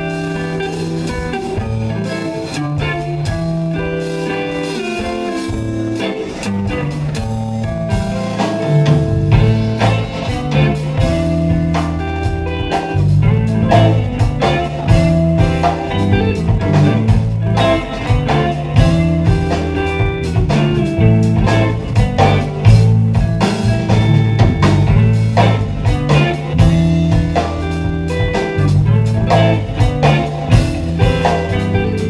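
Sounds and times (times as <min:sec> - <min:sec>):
drum kit: 0:00.0 - 0:32.0
electric bass line: 0:00.0 - 0:32.0
electric guitar: 0:00.0 - 0:32.0
keyboards: 0:00.0 - 0:32.0.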